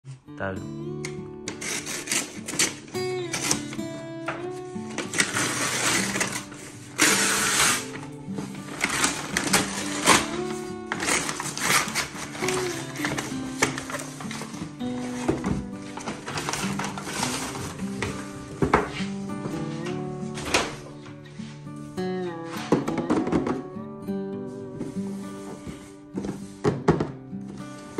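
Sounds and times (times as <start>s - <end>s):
background music: 0.1s - 27.9s
paper crinkling and tearing: 1.5s - 19.1s.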